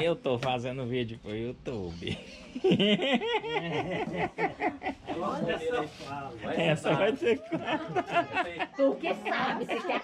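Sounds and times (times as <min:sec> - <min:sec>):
people laughing: 0:02.0 - 0:10.0.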